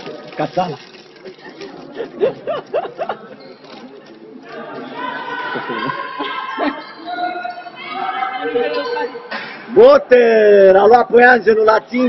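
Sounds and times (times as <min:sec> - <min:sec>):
chatter of voices: 0:00.0 - 0:10.1.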